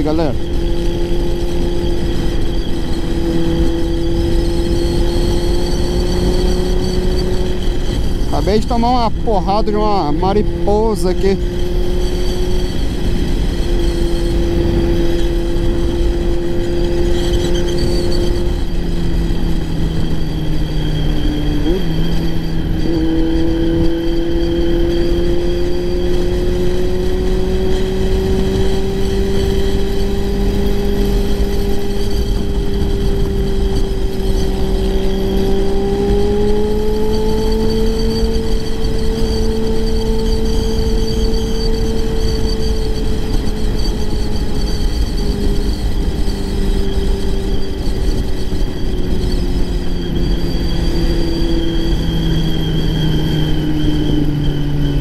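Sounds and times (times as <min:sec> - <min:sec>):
motorcycle engine running: 0:00.0 - 0:55.0
wind rush on microphone: 0:00.0 - 0:55.0.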